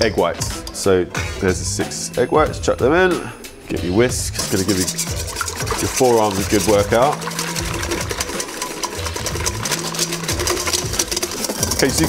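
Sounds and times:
whisk beating in metal bowl: 0:04.1 - 0:12.0.

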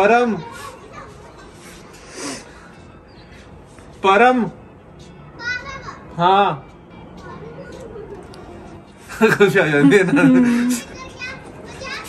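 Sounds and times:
faint background chatter: 0:00.0 - 0:12.0.

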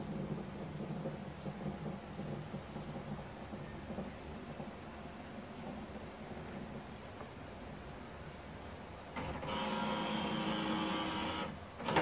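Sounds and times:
scanner motor whirring: 0:09.2 - 0:12.0.

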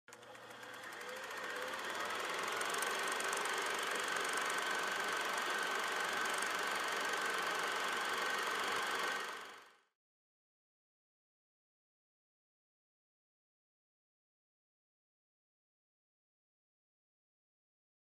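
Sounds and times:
film projector whirring: 0:00.1 - 0:09.8.

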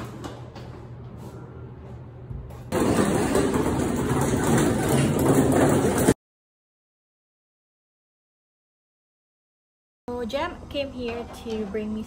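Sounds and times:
plastic casters rolling on floor: 0:02.7 - 0:06.2.

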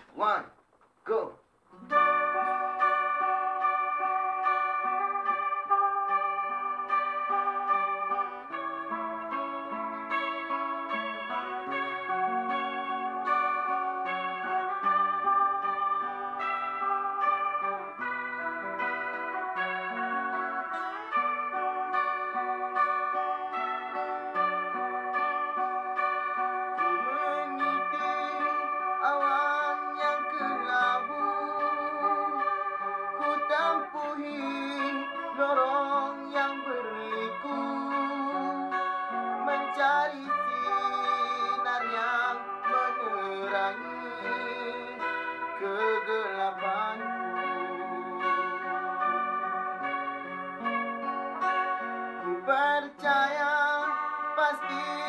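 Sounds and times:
strummed acoustic guitar: 0:01.7 - 0:55.0
electric guitar lead melody: 0:01.8 - 0:55.0.

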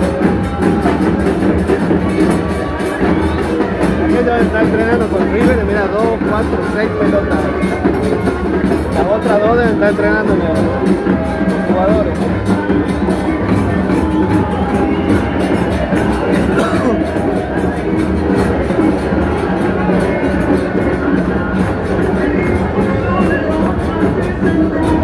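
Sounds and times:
crowd voices: 0:00.0 - 0:25.0
drums beating: 0:00.0 - 0:25.0.

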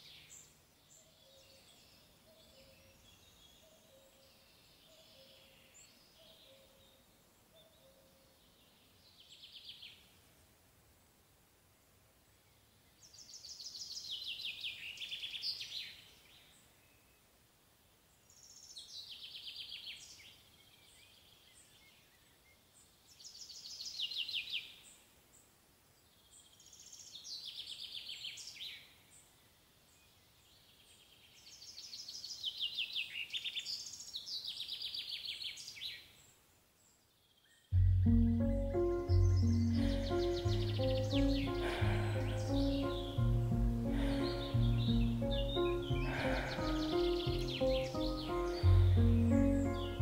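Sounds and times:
faint outdoor background noise: 0:00.0 - 0:50.0
songbird trilling: 0:37.8 - 0:50.0.

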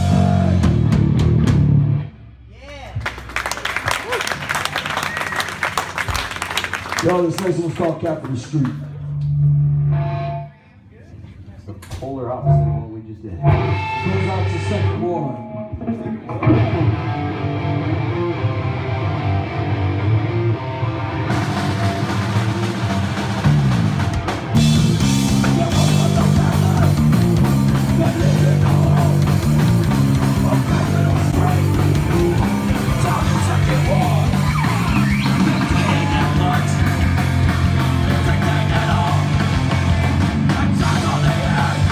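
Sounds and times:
punk band playing loud: 0:00.0 - 0:02.2, 0:13.4 - 0:14.9, 0:15.8 - 0:41.9
bass and guitar playing: 0:00.0 - 0:04.0, 0:08.8 - 0:10.6, 0:12.3 - 0:41.9.

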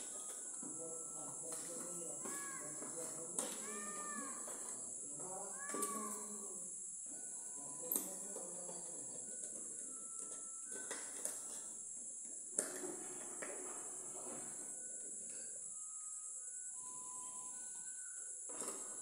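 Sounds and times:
steady high-pitched hiss: 0:00.0 - 0:19.0.

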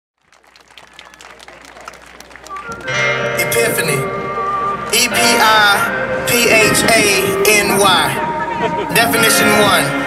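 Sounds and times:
audience clapping: 0:00.2 - 0:03.1.

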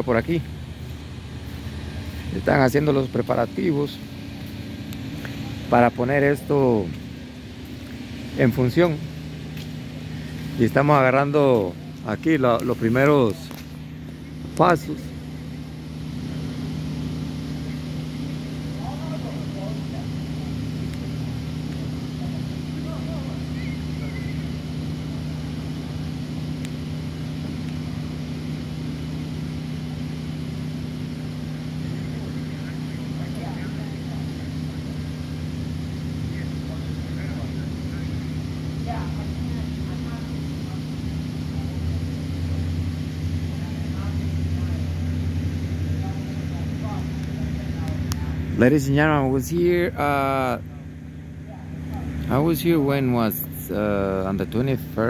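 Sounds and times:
engine idling: 0:00.0 - 0:55.0.

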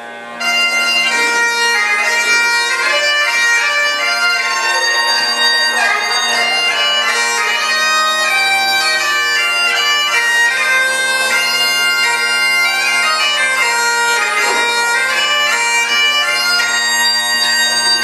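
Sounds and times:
bagpipes playing a tune: 0:00.0 - 0:18.0.

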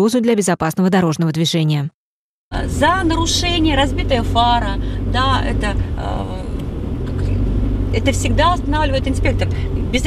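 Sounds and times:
car road and engine rumble: 0:02.5 - 0:10.0.

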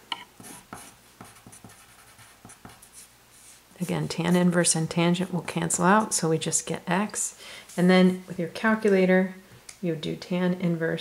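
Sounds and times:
pencil scratching on paper: 0:00.4 - 0:04.7.

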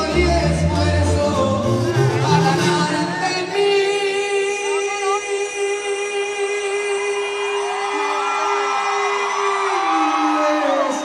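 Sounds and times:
crowd voices and whoops: 0:06.7 - 0:11.0.

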